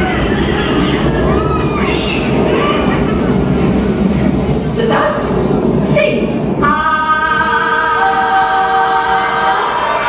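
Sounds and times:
choir singing sustained chord: 6.5 - 10.0.

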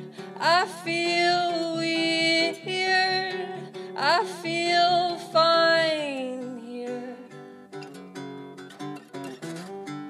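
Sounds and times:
woman singing: 0.0 - 7.6
acoustic guitar: 0.0 - 10.0.

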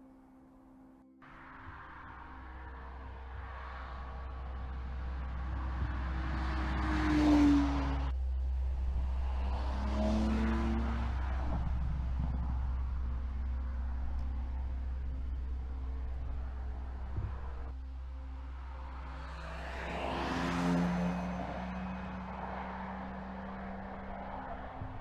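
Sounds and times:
car engine driving past: 1.2 - 25.0.

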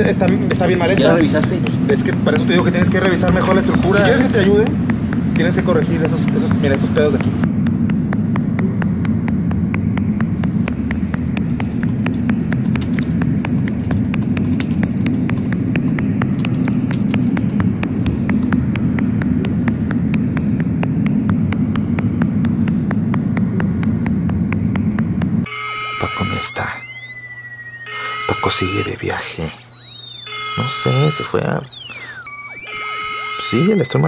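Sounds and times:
transit vehicle rumble: 0.0 - 25.5.

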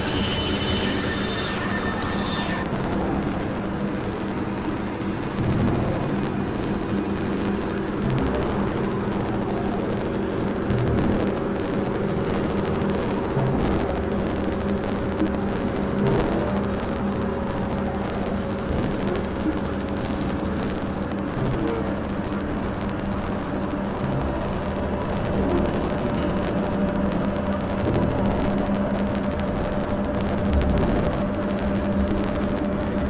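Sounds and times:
high whine: 0.0 - 33.0
low droning synthesizer tones: 0.0 - 33.0.

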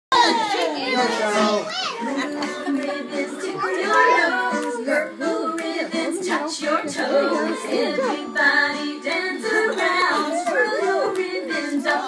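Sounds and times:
children chattering: 0.1 - 5.1, 6.0 - 8.4.

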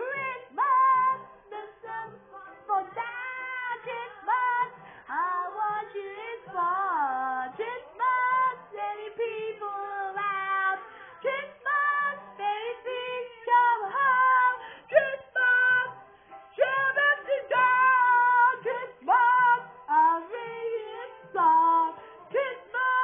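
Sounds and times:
light musical backing: 0.0 - 23.0
women singing: 0.0 - 23.0.

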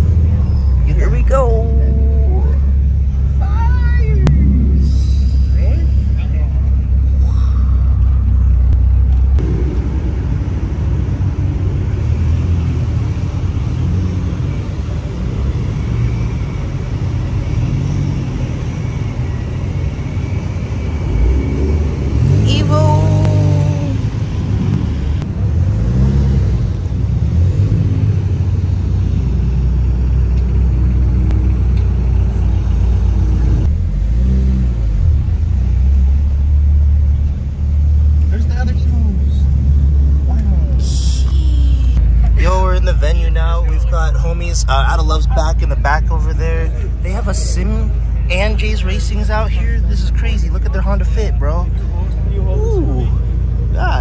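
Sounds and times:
car engines rumbling: 0.0 - 54.0
engine revving: 4.0 - 31.9, 32.9 - 42.7.

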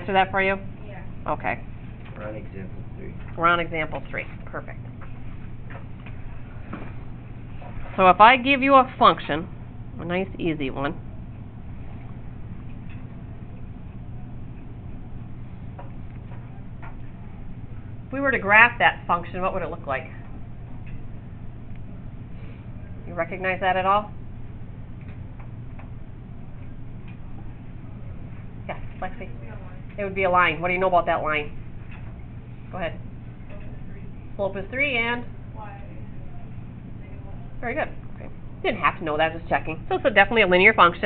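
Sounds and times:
low hum: 0.0 - 41.0.

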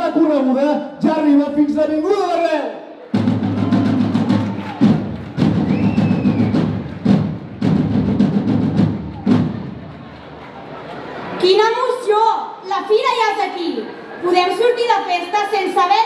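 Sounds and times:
big drums rolling and striking: 3.1 - 11.4.

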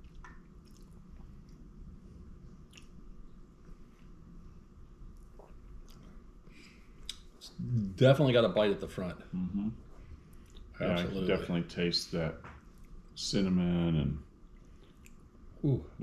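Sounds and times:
wet mouth clicks and lip smacks: 0.0 - 1.6, 2.7 - 3.0, 14.5 - 15.2
low room hum: 0.0 - 16.0.

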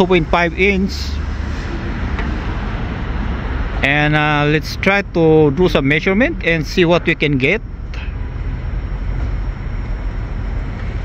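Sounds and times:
low rumble: 1.2 - 11.0.

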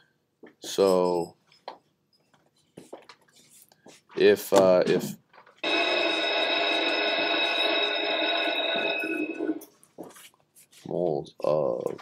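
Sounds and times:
steady multi-pitch tone: 5.6 - 9.7.

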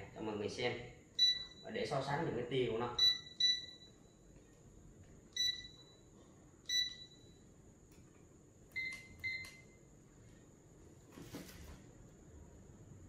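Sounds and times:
short electronic beeps: 1.2 - 1.6, 3.0 - 4.0, 6.7 - 7.4.

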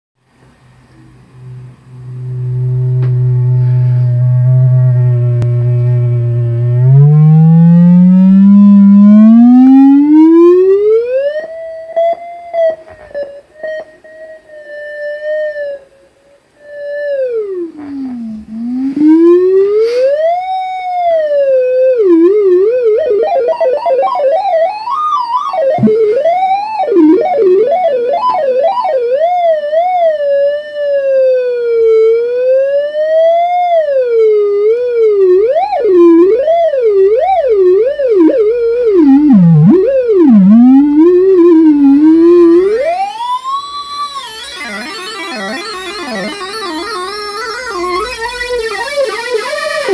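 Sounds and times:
gliding electronic synthesizer tone: 1.0 - 15.8, 16.6 - 31.0, 33.7 - 49.9.

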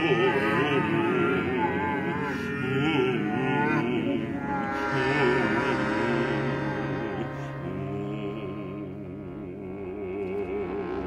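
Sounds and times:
chamber ensemble sustained pitches: 0.0 - 11.0.

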